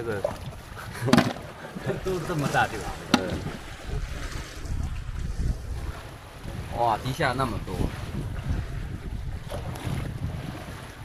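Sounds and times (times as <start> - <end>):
water lapping against boat: 0.0 - 11.0
wind rumbling on microphone: 0.0 - 11.0.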